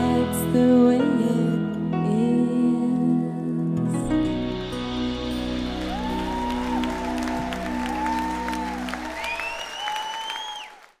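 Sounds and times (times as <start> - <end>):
audience applause and whoops: 5.3 - 11.0.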